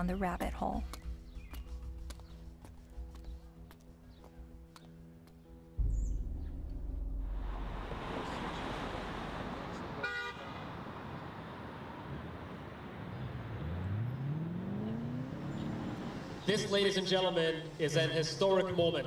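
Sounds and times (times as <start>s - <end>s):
music: 0.0s - 7.5s
passing cars rumble: 5.9s - 19.0s
vehicle engine pulling away: 6.8s - 18.2s
car horn toot: 10.0s - 10.7s.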